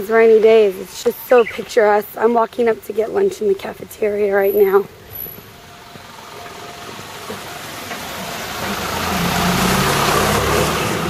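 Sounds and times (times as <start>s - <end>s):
vehicle engine: 4.5s - 11.0s
tyres hissing on wet road: 4.9s - 11.0s.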